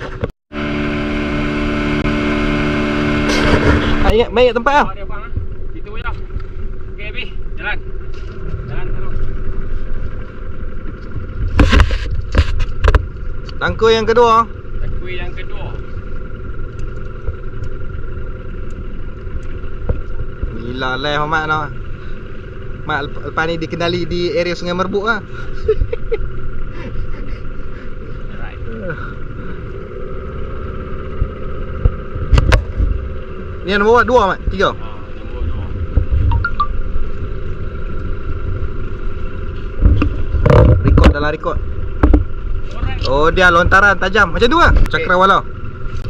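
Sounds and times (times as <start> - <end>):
outboard motor running: 0.0 - 46.0
wind rumbling on microphone: 8.0 - 13.5, 29.9 - 33.5, 34.3 - 43.9
sharp knocks: 42.0 - 42.3.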